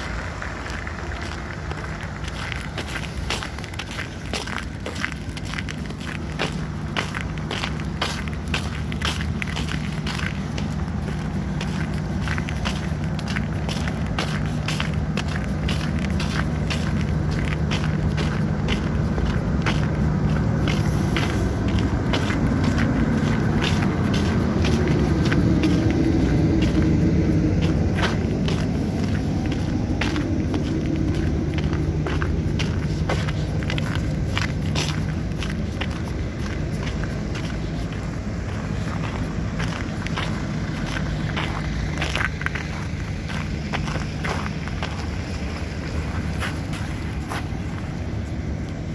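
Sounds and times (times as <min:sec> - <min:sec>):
footsteps crunching on snow: 0:00.0 - 0:48.9
low engine hum: 0:00.0 - 0:48.9
vehicle passing: 0:00.0 - 0:48.9.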